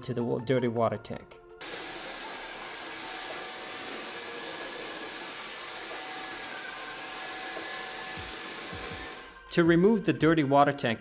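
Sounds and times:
vacuum cleaner running: 0:01.6 - 0:09.4.

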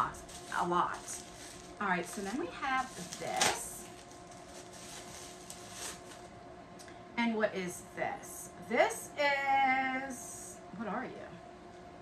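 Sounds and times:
bubble wrap rustling: 0:00.0 - 0:06.4.

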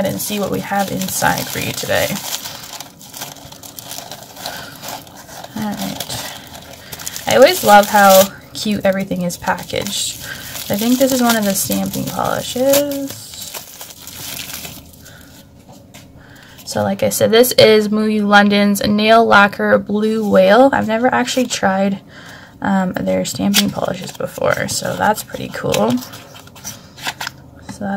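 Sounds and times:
plastic gift wrap crinkling: 0:00.0 - 0:15.4, 0:23.8 - 0:27.3.

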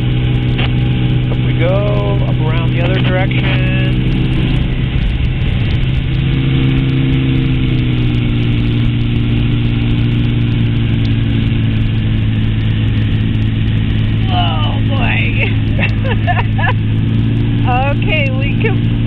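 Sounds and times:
aircraft engine and propeller: 0:00.0 - 0:19.0
wind rushing: 0:00.0 - 0:19.0.

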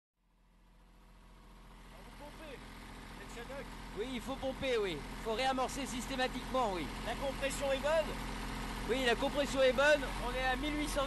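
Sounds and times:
boat engine running: 0:00.7 - 0:11.0.

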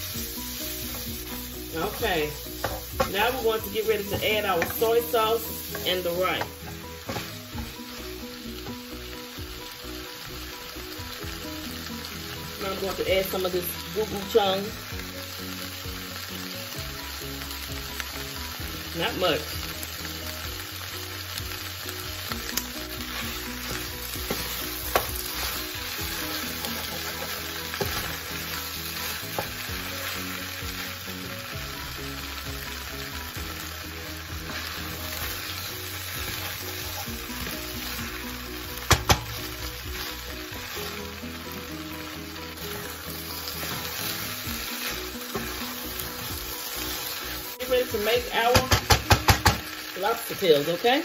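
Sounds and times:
fried rice sizzling in pan: 0:00.0 - 0:51.0.

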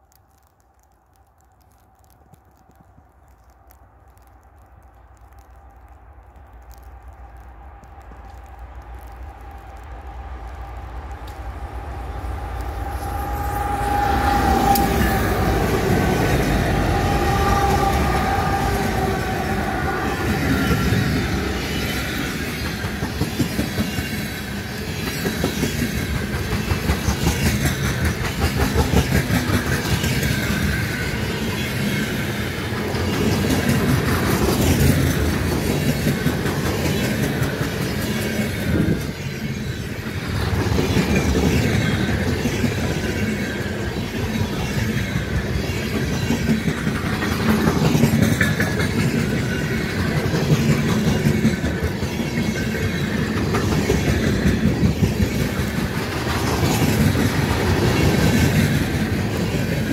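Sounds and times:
wheels clacking over rails: 0:44.9 - 0:59.9.

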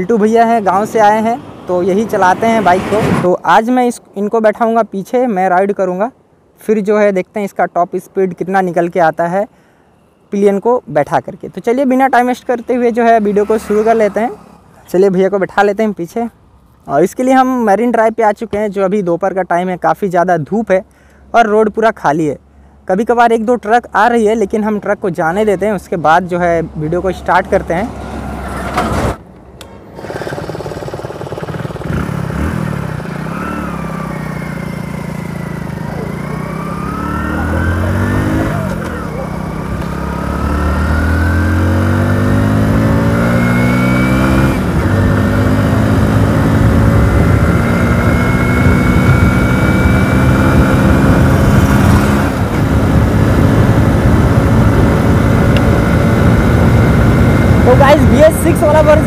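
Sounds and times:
motorcycle engine accelerating: 0:29.9 - 0:59.0.

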